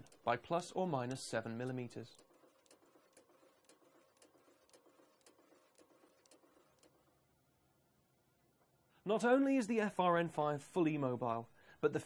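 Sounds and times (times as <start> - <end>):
numbering machine clicking: 0.0 - 7.0
low steady hum: 0.0 - 12.0.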